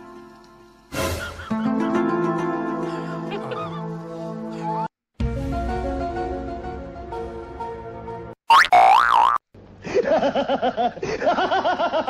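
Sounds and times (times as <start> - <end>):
background music: 0.0 - 8.4
cartoon boing sound effect: 8.5 - 9.4.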